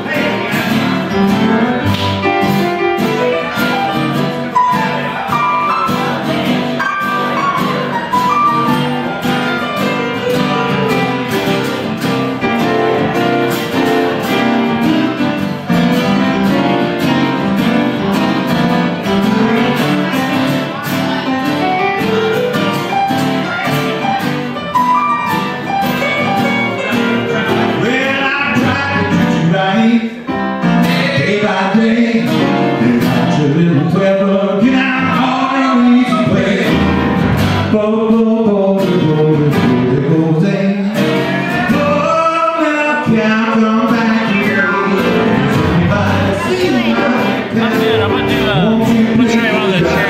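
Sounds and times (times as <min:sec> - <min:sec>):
blues guitar playing: 0:00.0 - 0:50.0
keyboard: 0:00.0 - 0:50.0.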